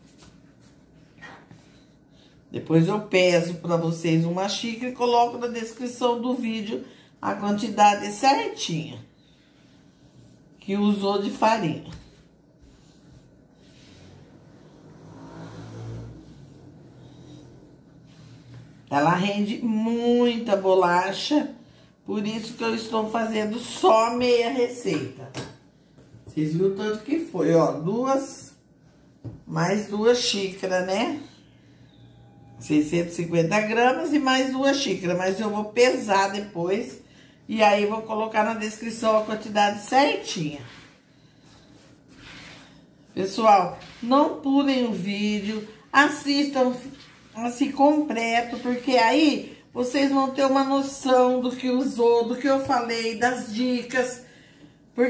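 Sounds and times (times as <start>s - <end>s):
vehicle engine passing by: 13.9s - 18.6s.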